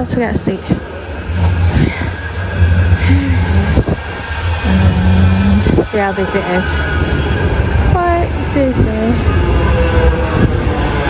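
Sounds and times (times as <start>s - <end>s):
tram rumbling: 0.0s - 11.0s.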